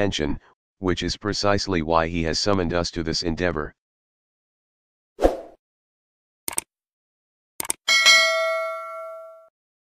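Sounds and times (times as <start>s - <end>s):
bright bell ding: 7.9s - 9.5s.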